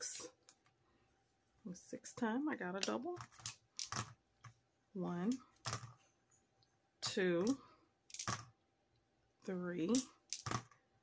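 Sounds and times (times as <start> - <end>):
dice clattering on a board: 2.8 - 4.2, 7.4 - 8.5, 9.9 - 10.8
person speaking: 4.9 - 5.6.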